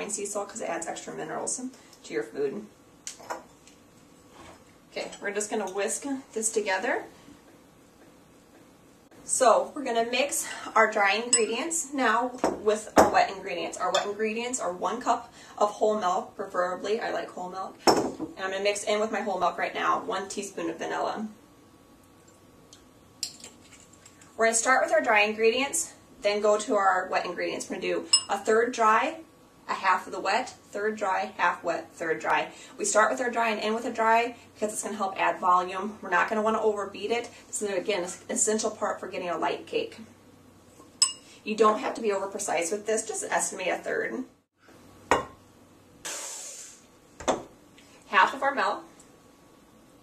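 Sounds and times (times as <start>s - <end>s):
dry powder pouring hiss: 46.0s - 46.9s.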